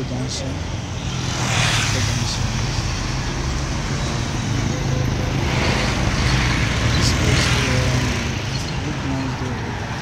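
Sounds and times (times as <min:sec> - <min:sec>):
cars driving past: 0:00.0 - 0:10.0.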